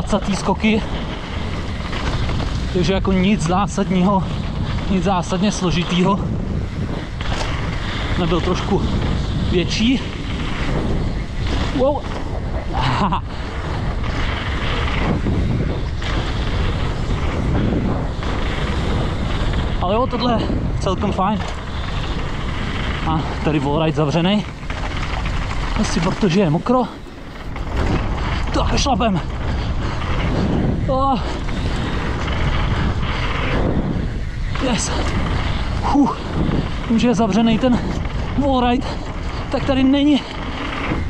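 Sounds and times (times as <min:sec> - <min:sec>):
bike tyres and frame rattling: 0:00.0 - 0:41.0
wind rushing over microphone: 0:00.0 - 0:41.0.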